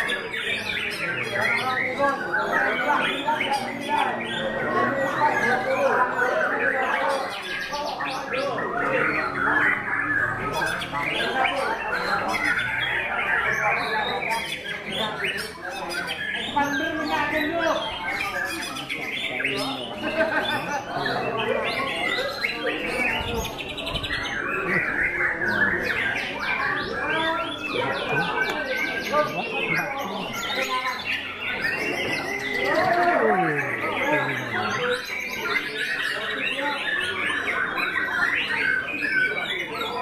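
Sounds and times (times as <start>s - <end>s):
bird singing sweeping notes: 0.0s - 40.0s.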